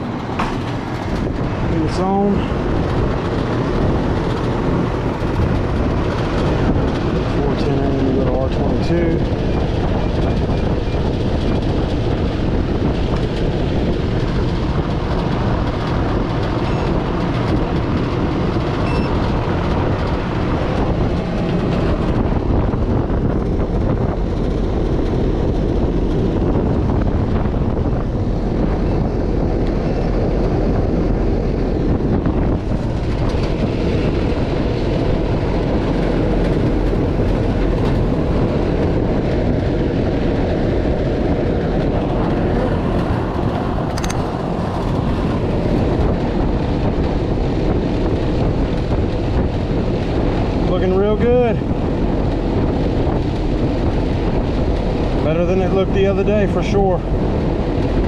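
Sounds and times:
air conditioning unit running: 0.0 - 58.0.

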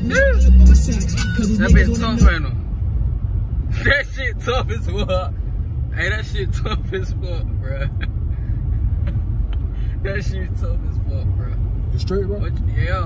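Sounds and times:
car engine rumble in cabin: 0.0 - 13.0
man talking: 10.0 - 13.0.

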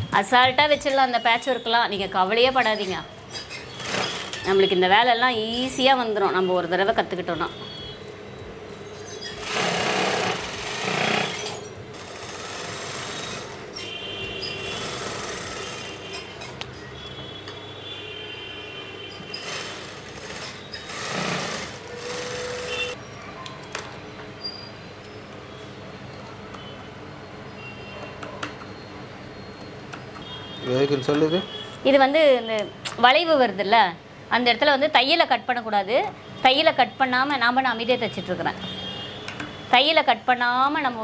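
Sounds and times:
sewing machine stitching: 3.6 - 4.6, 9.4 - 13.6, 14.7 - 16.2, 19.4 - 23.0.

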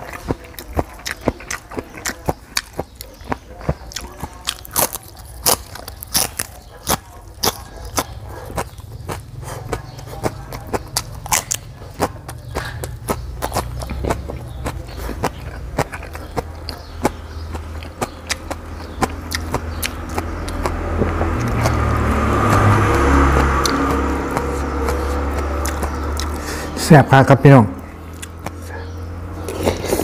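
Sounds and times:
crunching raw vegetables: 0.0 - 30.0
low rumbling noise: 17.2 - 30.0.

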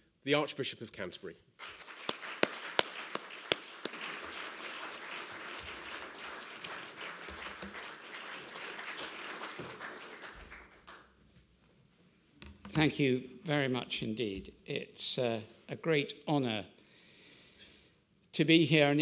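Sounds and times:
audience applauding: 1.6 - 11.1.

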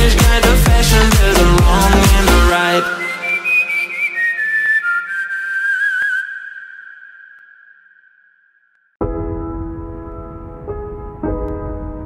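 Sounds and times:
whistled melody: 1.8 - 8.6.

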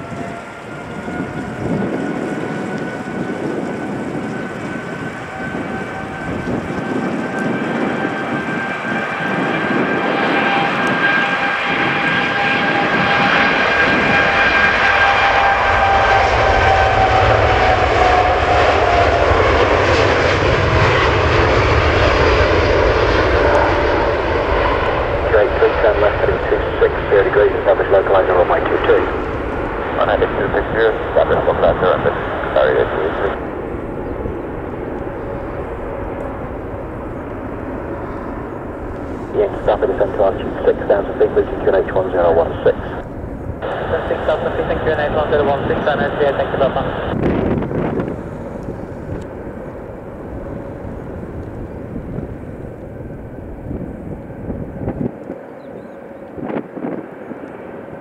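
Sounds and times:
jet engines roaring with whine: 0.0 - 58.0
radio chatter: 25.2 - 29.2, 29.9 - 33.4, 39.3 - 43.0, 43.6 - 47.2.

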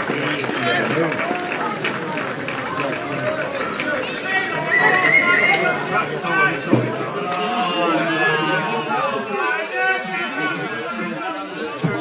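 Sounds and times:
crowd voices calling out: 0.0 - 12.0.

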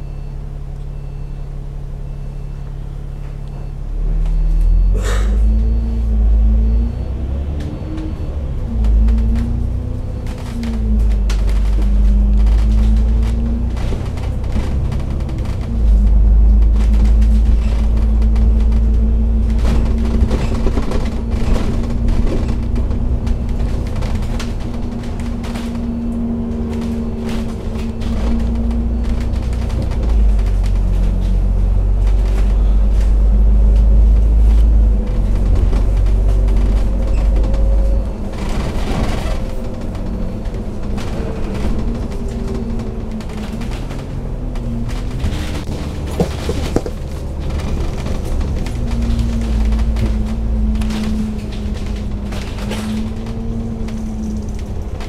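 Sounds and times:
bus engine rumbling: 0.0 - 55.0
drivetrain whine: 0.0 - 55.0.

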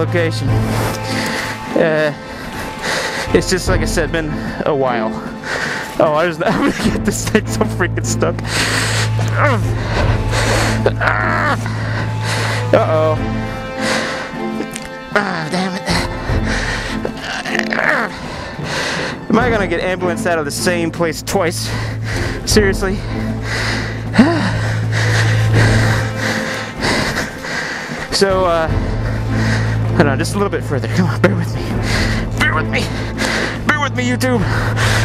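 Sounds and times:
heavy strained breathing: 0.5 - 6.0, 8.3 - 20.2, 21.5 - 30.0, 30.8 - 33.7, 34.4 - 35.0.

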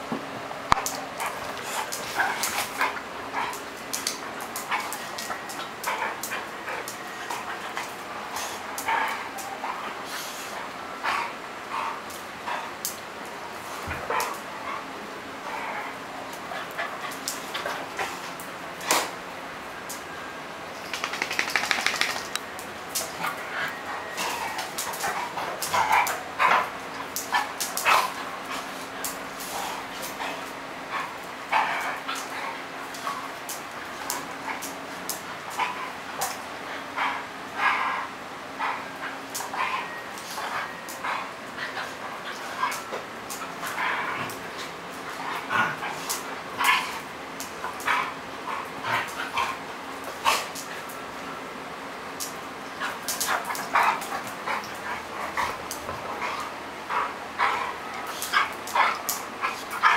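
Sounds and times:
quick clicks: 20.8 - 22.4.

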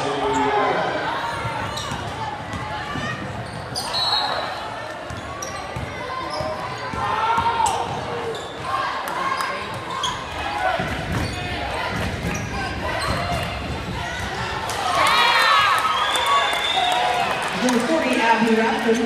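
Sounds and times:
shoe squeaks and knocks: 3.4 - 4.5, 5.1 - 6.6, 11.1 - 11.6.

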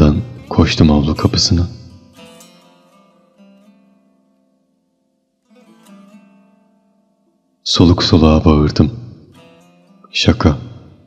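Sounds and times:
plucked guitar music: 0.0 - 11.0.

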